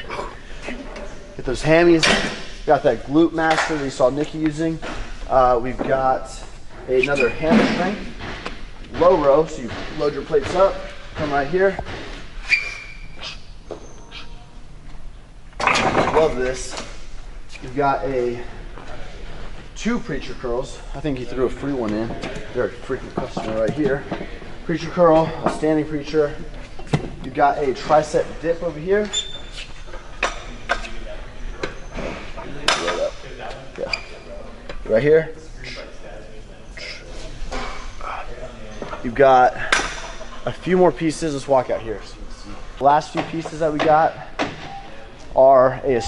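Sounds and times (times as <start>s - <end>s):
metal knocks and clanks: 7.4s - 12.3s.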